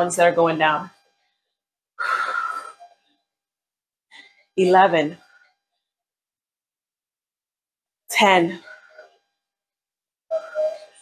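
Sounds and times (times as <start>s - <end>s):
woman breathing with exertion: 2.0s - 2.8s, 8.6s - 9.2s.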